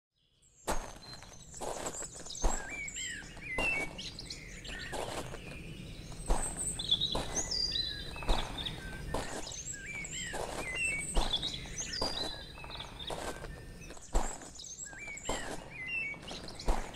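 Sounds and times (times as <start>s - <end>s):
birds chirping and singing: 0.3s - 16.9s
footsteps on outdoor ground: 0.6s - 16.9s.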